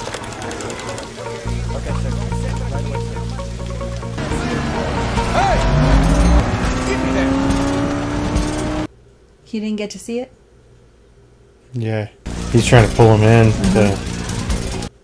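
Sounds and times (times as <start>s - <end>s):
dialogue: 0.2s - 7.8s, 11.7s - 14.8s
film music: 1.2s - 8.9s
race car engine: 1.2s - 8.9s, 12.3s - 14.9s.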